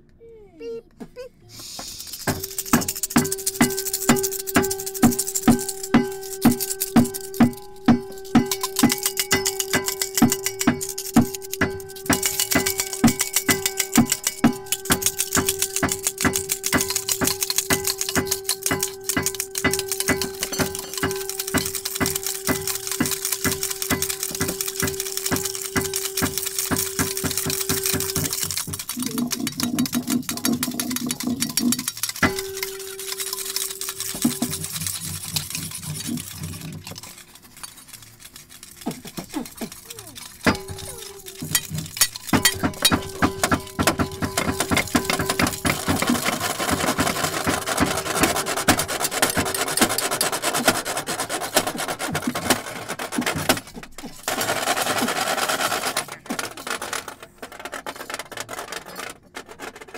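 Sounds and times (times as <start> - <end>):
rubbing and scraping: 1.0 - 59.9
small clicks and clinks: 1.6 - 59.9.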